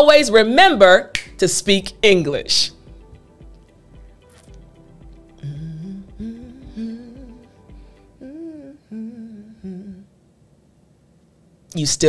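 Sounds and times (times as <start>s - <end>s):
woman humming a tune: 5.3s - 10.2s.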